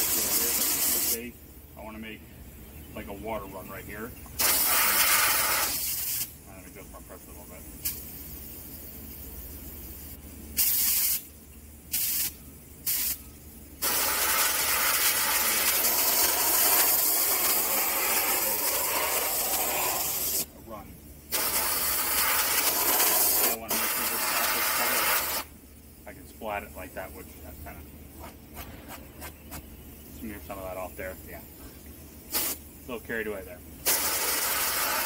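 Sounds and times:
paint spray gun hissing: 0.0s - 1.3s, 4.3s - 6.4s, 7.8s - 20.5s, 21.2s - 25.9s, 32.0s - 33.0s, 33.8s - 35.0s.

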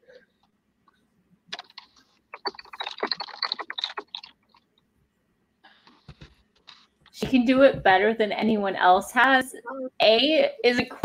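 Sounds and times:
typing on computer keyboard: 1.6s - 4.3s.

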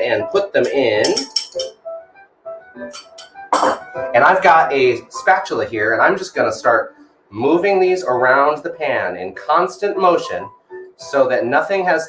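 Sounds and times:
glass bowl clinking: 0.6s - 1.8s, 2.9s - 3.9s.

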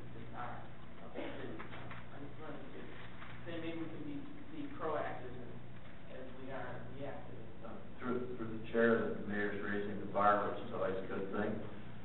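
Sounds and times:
electrical hum: 0.0s - 12.0s.

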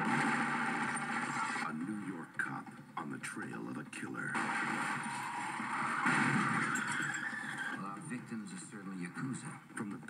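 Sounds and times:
film trailer sound effects from tv: 0.0s - 10.0s.

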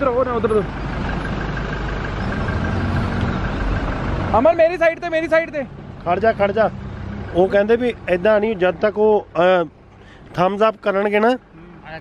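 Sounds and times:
engine rumbling at low revs: 0.0s - 12.0s.

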